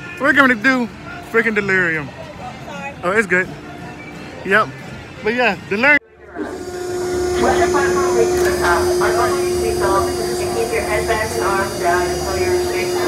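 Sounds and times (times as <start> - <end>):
low equipment rumble: 6.0 - 13.0
machine hum: 6.0 - 13.0
people talking: 7.3 - 13.0.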